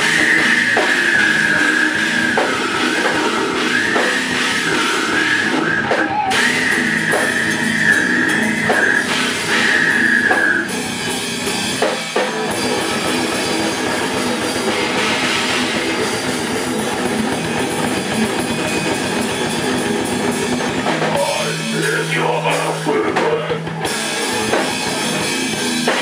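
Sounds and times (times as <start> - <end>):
death metal band playing: 0.0 - 26.0
high held tone: 0.0 - 26.0.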